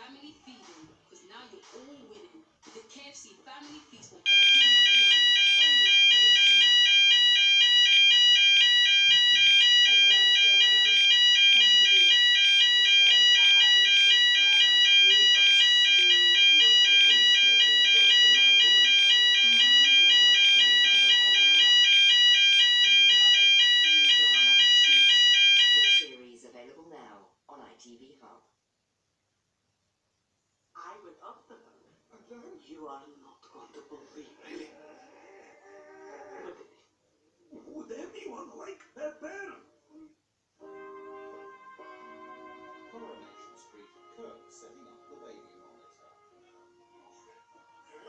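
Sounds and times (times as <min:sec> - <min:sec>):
faint television speech: 0:00.0 - 0:28.6, 0:30.7 - 0:48.0
alarm beeping rapidly: 0:04.3 - 0:26.2.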